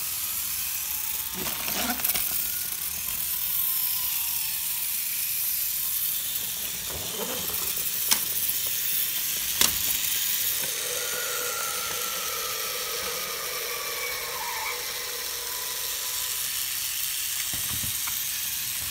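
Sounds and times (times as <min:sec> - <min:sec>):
toy train motors whirring: 0:00.0 - 0:18.9
faint falling tone: 0:10.6 - 0:16.8.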